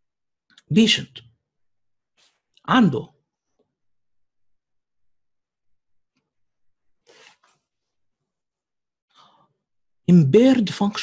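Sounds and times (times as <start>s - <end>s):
faint breath: 7.0s - 7.6s, 9.1s - 9.6s.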